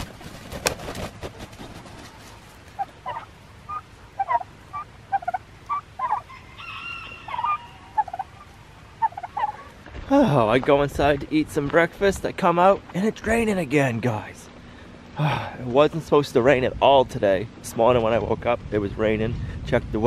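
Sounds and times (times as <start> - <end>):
wing flapping: 0.0 - 4.5
turkeys clucking and calling: 0.0 - 10.0.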